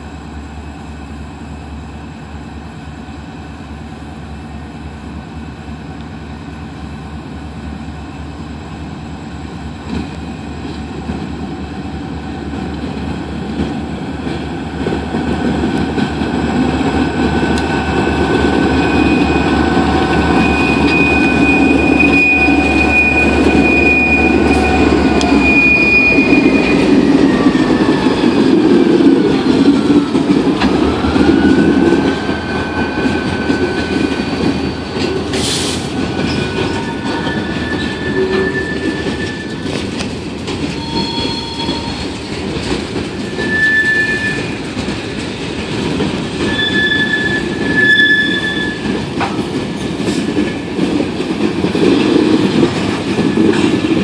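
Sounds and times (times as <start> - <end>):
diesel locomotive engine rumble: 0.0 - 54.0
steel wheels rumbling on rail: 0.0 - 54.0
high wheel squeals: 18.5 - 28.5, 30.8 - 39.8, 40.7 - 42.1, 43.2 - 44.6, 46.4 - 49.0.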